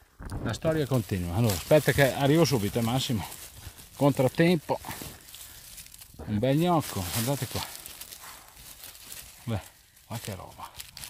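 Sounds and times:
dry leaves rustling: 0:00.0 - 0:11.0
person speaking: 0:00.4 - 0:05.2, 0:06.2 - 0:08.0, 0:09.2 - 0:10.9.

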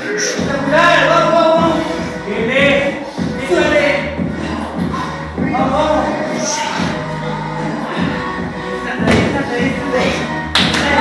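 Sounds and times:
background music with a beat: 0:00.0 - 0:11.0.

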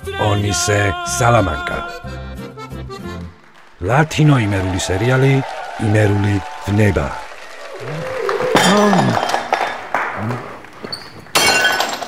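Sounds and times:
glass smashing on floor: 0:08.6 - 0:09.9, 0:11.0 - 0:12.0.

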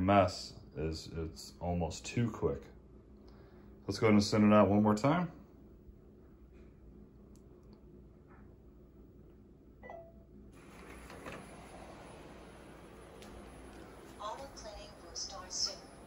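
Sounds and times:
robot vacuum running: 0:10.6 - 0:16.0.

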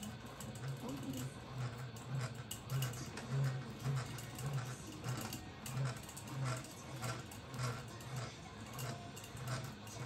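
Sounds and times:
electric fishing reel hum: 0:00.0 - 0:10.0.

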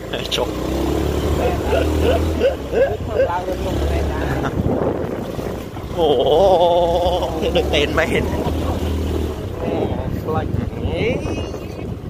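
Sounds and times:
small motorbike engine running: 0:00.0 - 0:04.6.

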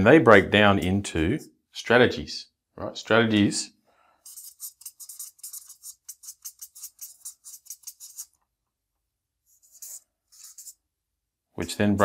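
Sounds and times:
marker pen scratching on paper: 0:04.2 - 0:08.5, 0:09.5 - 0:10.9.

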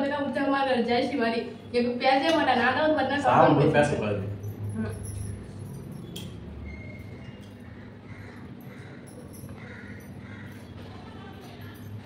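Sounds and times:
bangles clinking: 0:04.3 - 0:07.6, 0:08.5 - 0:12.0.

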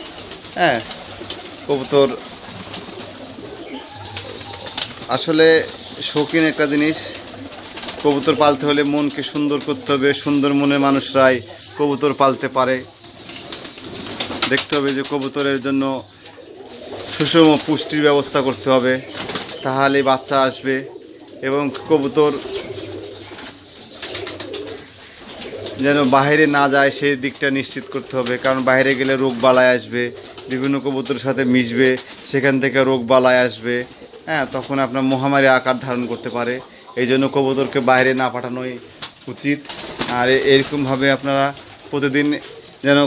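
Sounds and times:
pigeons cooing: 0:00.0 - 0:43.0.

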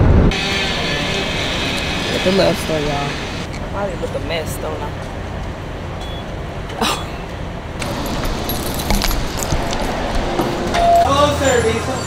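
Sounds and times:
idling vehicle hum: 0:00.0 - 0:11.8
outdoor traffic: 0:00.0 - 0:12.0.

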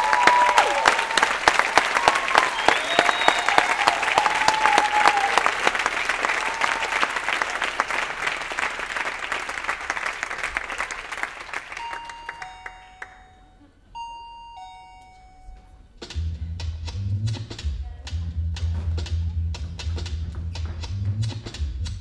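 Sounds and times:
whooping cheers: 0:00.0 - 0:08.0
audience applauding: 0:00.0 - 0:13.4.

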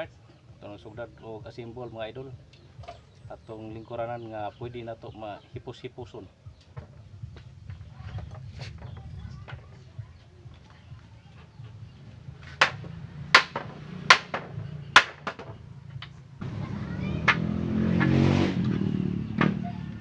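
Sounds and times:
passing motor vehicle: 0:11.4 - 0:20.0.

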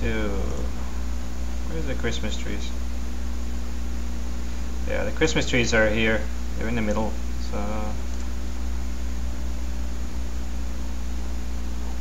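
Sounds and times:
person speaking: 0:00.0 - 0:01.0, 0:01.6 - 0:02.8, 0:04.8 - 0:08.1
steady low hum: 0:00.0 - 0:12.0.

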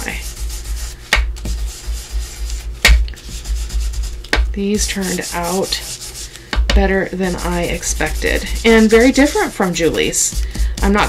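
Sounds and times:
ink blending tool scrubbing paper: 0:00.0 - 0:11.0.

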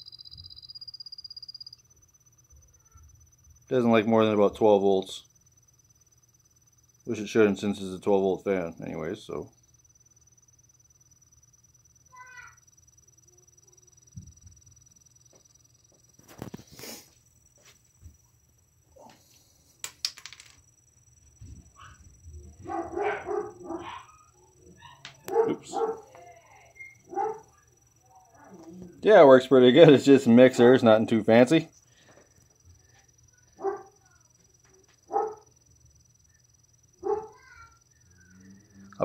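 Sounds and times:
computer fan humming: 0:00.0 - 0:37.2.

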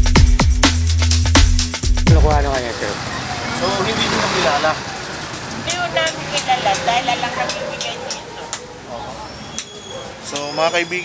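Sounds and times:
people talking indistinctly: 0:02.1 - 0:11.0
street and traffic noise: 0:02.1 - 0:11.0.

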